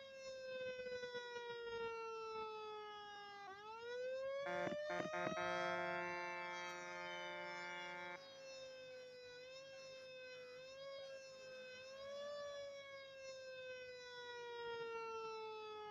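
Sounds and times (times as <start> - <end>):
mechanical siren winding down: 4.4 - 8.2
multi-tone horn blast: 4.4 - 8.2.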